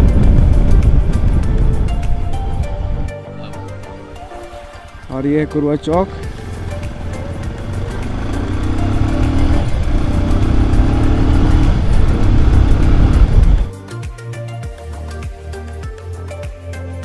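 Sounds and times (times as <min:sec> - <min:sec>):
motorcycle engine: 0:00.0 - 0:05.1, 0:05.8 - 0:13.7
road noise: 0:00.0 - 0:13.7.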